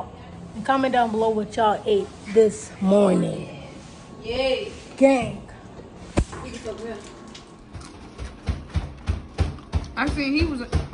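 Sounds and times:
faint background noise: 0.0s - 10.9s.

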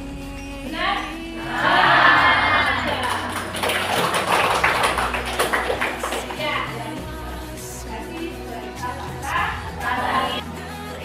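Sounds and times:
group clapping hands: 1.8s - 7.0s.

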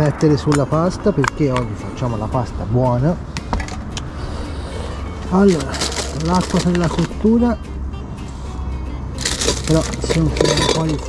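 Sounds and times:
gear rustling: 5.2s - 7.1s, 9.2s - 11.0s.

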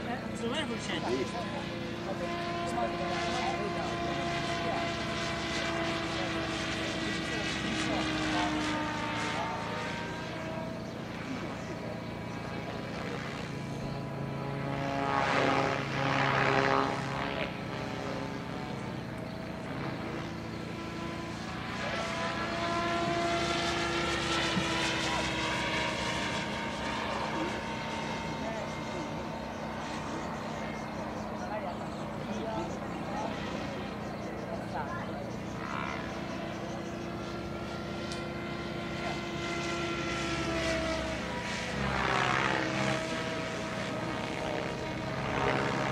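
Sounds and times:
model helicopter flying: 0.0s - 45.9s.

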